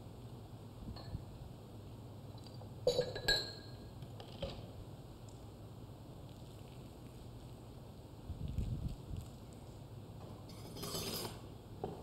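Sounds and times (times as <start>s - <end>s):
glass vessels clinking: 2.8s - 3.8s.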